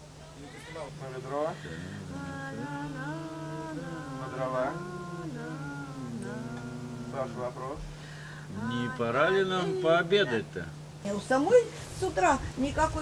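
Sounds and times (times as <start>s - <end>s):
woman singing unaccompanied: 1.2s - 7.8s, 8.4s - 10.6s.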